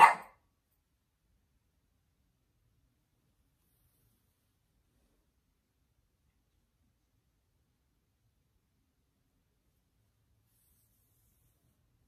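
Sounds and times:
dog bark: 0.0s - 0.4s.

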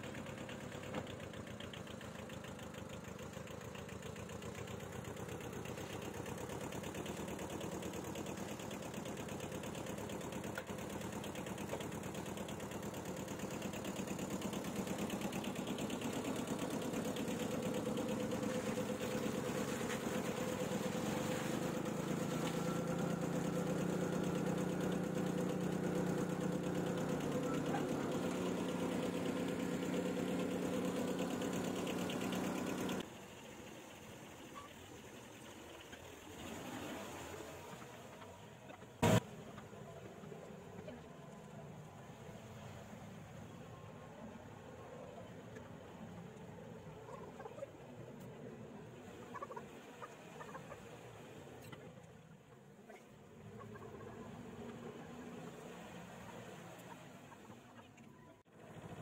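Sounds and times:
tractor diesel engine idling: 0.0s - 42.2s.

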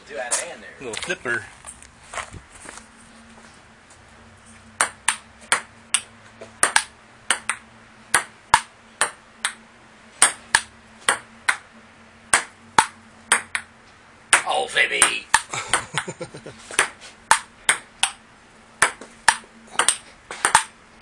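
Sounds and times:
ping-pong ball clicking: 4.8s - 9.6s, 10.2s - 11.6s, 12.3s - 13.7s, 16.8s - 18.2s, 18.8s - 20.7s.

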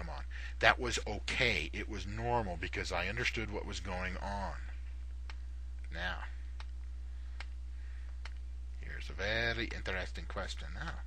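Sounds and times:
low electrical hum: 0.0s - 11.0s
sharp clicks: 5.2s - 8.5s.

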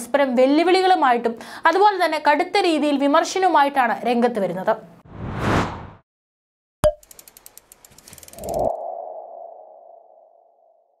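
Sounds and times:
rapid ratchet-like ticks: 7.0s - 8.7s.

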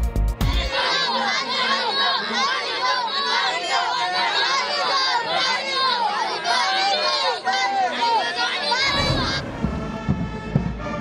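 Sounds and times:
music with deep drum beats: 0.0s - 0.7s, 9.0s - 11.0s
crowd shouting a chant: 0.5s - 11.0s.

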